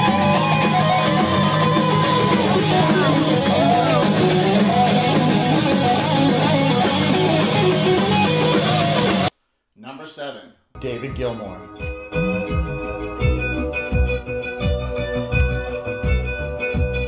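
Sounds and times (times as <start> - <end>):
electric guitar: 0.0 - 9.3, 11.8 - 17.0
drums: 0.0 - 9.4, 11.0 - 17.0.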